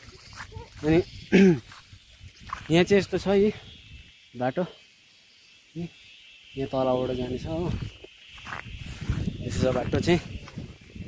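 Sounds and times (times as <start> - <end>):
young man speaking: 9.4 - 10.4.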